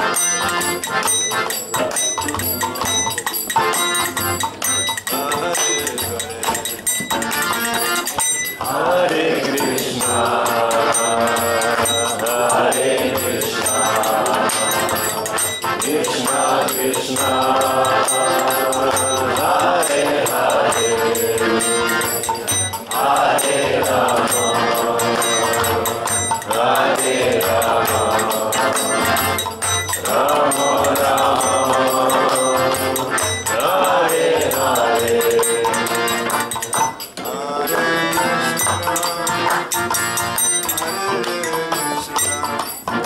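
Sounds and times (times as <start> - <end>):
hand cymbals ticking: 0.0 - 43.0
harmonium: 0.0 - 43.0
light metallic percussion: 0.0 - 43.0
voices chanting a mantra: 8.6 - 39.8.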